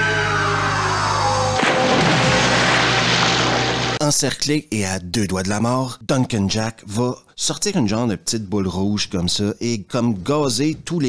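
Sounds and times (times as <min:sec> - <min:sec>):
film music: 0:00.0 - 0:04.0
body splashing into pool: 0:01.6 - 0:04.0.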